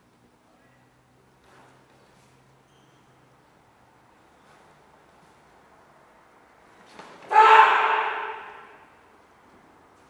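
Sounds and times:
loud sharp shout echoing: 0:07.3 - 0:09.0.

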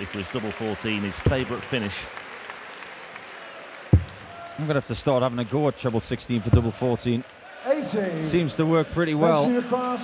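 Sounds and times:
crowd applauding: 0:00.0 - 0:08.2.

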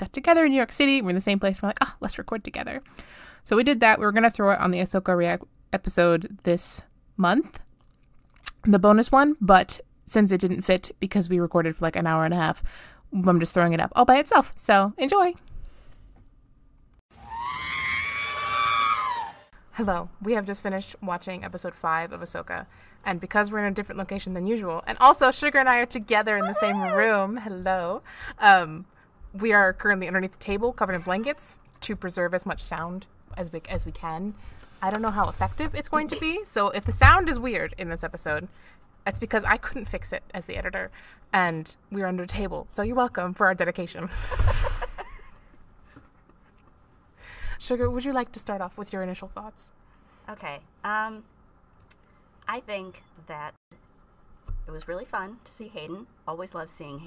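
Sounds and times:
high-pitched scream-like cry: 0:17.1 - 0:19.5, 0:26.4 - 0:27.1
woman laughing: 0:26.4 - 0:27.2, 0:30.8 - 0:31.6, 0:44.1 - 0:45.4.

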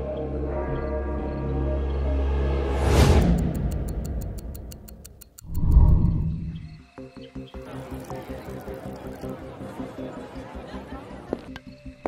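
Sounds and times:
rapid clock-like ticking: 0:03.0 - 0:06.2.

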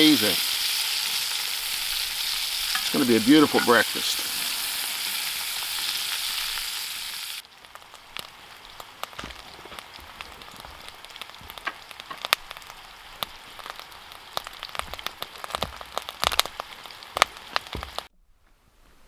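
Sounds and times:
food sizzling in a pan: 0:00.0 - 0:18.1
stirring in a pan: 0:00.7 - 0:06.6.

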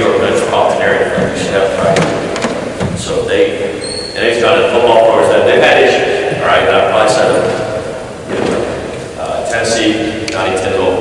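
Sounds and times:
man giving a talk: 0:00.0 - 0:11.0.

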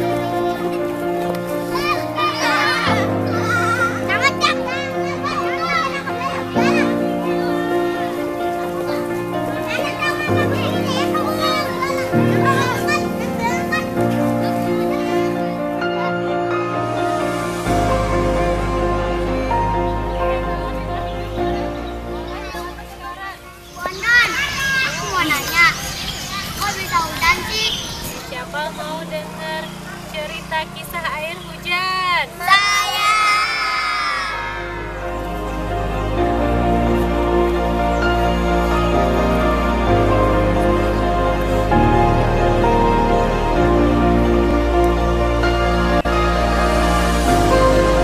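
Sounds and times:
background music with held chords: 0:00.0 - 0:23.9, 0:34.2 - 0:48.0
children shouting and squealing: 0:00.0 - 0:48.0.

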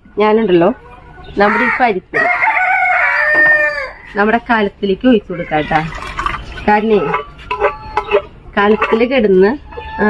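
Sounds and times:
rooster crowing: 0:01.4 - 0:04.1.

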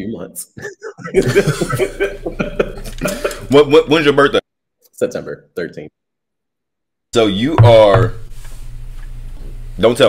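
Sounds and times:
man laughing: 0:00.5 - 0:03.9.

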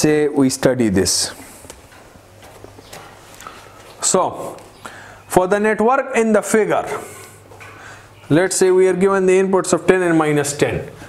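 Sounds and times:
faint footsteps on hard floor: 0:01.6 - 0:04.0.

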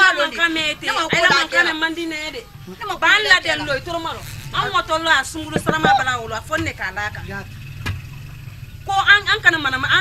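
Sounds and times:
soft knock: 0:01.1 - 0:01.5, 0:05.6 - 0:06.0.

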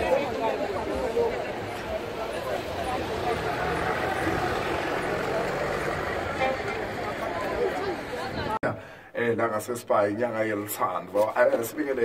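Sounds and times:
people talking: 0:00.0 - 0:12.0
vehicle engine running: 0:00.6 - 0:08.3.

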